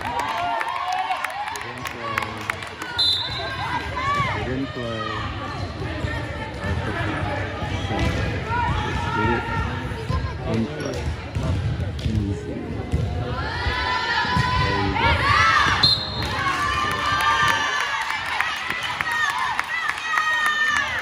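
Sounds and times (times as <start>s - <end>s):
girls shouting and cheering: 2.8s - 5.3s.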